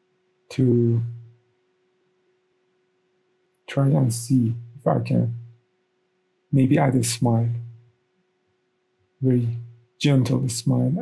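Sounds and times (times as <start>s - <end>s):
faint steady hum: 0.0s - 11.0s
man speaking: 0.5s - 1.2s, 3.7s - 5.4s, 6.6s - 7.6s, 9.2s - 11.0s.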